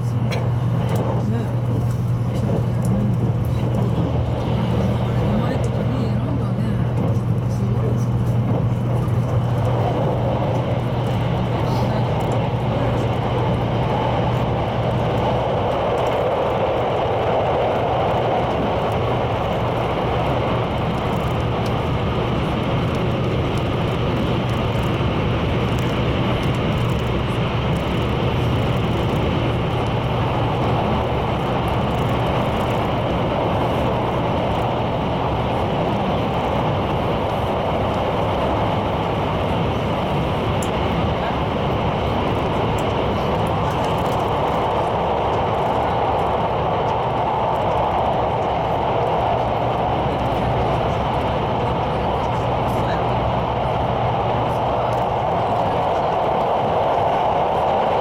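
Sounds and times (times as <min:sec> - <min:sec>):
constant low hum: 0:00.0 - 0:58.0
train wheels rumbling on rail: 0:00.0 - 0:58.0.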